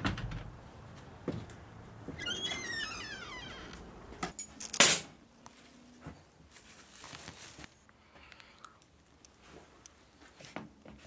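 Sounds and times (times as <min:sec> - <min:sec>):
door hinge creaking: 0:02.2 - 0:04.0.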